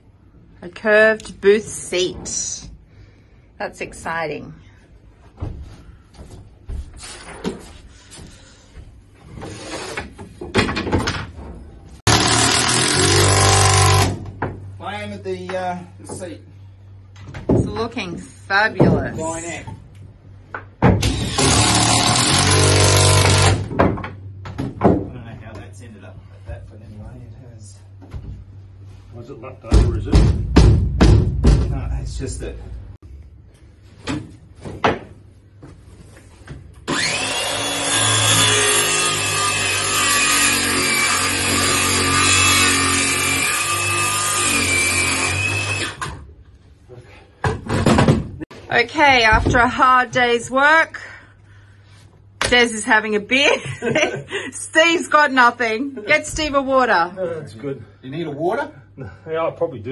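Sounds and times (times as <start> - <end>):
circular saw cutting wood: 12.1 - 14.1, 36.9 - 46.1
power tool motor whine: 36.9 - 46.1.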